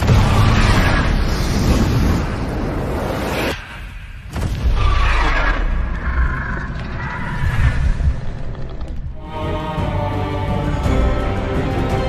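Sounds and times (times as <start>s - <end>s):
deep rumble: 4.4s - 9.3s.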